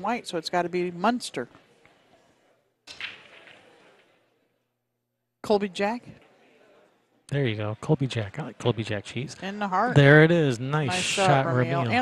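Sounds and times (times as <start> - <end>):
pool balls colliding: 2.9 - 4.1.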